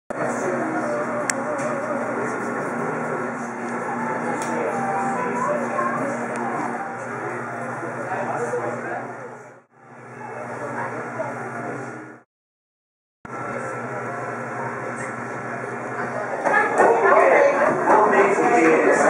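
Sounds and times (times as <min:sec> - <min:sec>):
chatter of many people: 0:00.1 - 0:12.2, 0:13.3 - 0:19.0.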